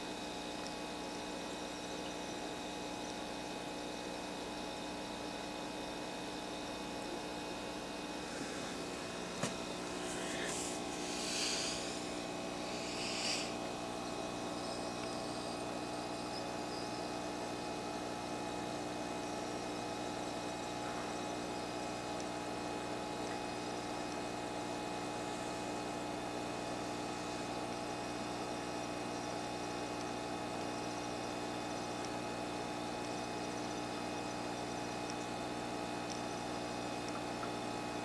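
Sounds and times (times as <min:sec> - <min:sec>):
even hiss: 0:08.0 - 0:14.6.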